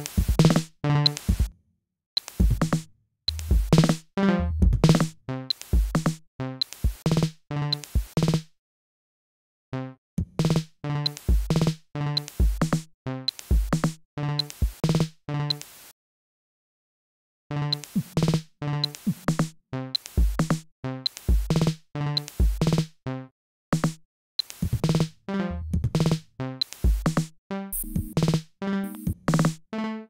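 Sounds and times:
sharp clicks and snare hits: 0.0 - 1.5, 2.2 - 8.5, 10.2 - 15.8, 17.7 - 23.0, 23.7 - 25.2, 25.8 - 29.6
kick drum thumps: 2.4 - 2.8, 3.4 - 4.0, 4.6 - 5.1.

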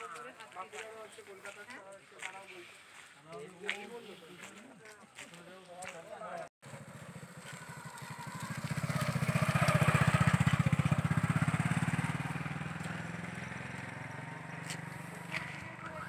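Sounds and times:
vehicle engine passing by: 6.6 - 16.0.

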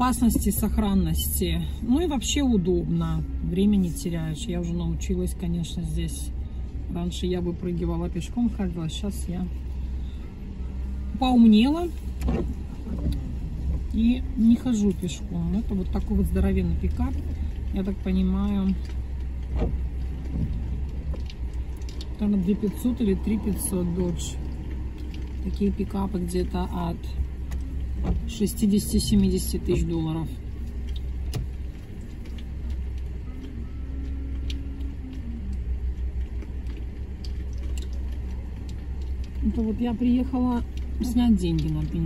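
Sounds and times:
car engine idling: 0.0 - 42.0.

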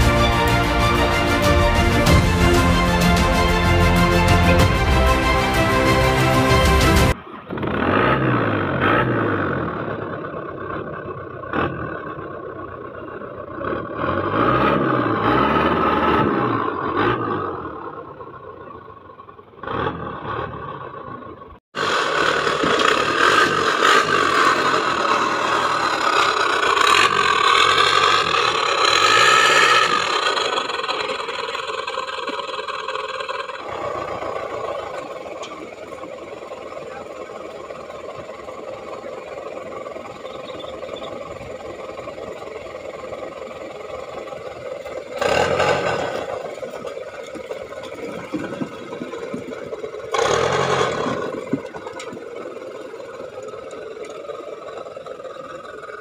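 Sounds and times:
off-road engine revving: 0.0 - 56.0.

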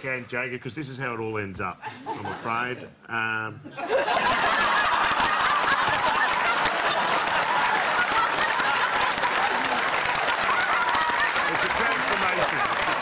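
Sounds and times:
audience laughing: 3.7 - 13.0
applause: 4.5 - 13.0.

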